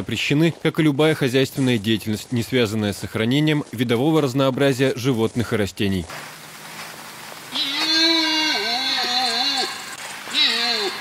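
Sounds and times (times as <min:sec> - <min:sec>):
red deer stag calling: 0:07.4 - 0:11.0.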